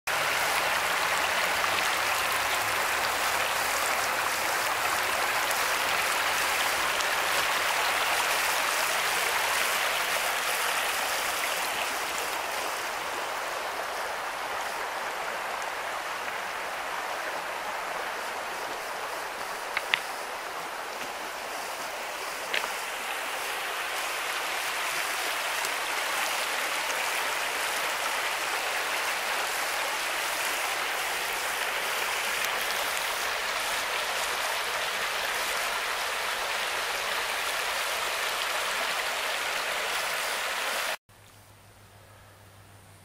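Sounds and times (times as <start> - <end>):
creek water rippling over stones: 0.1 - 41.3.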